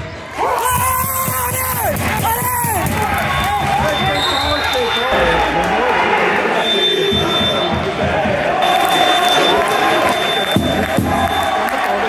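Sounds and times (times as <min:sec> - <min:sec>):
crowd cheering and clapping: 0:00.0 - 0:12.0.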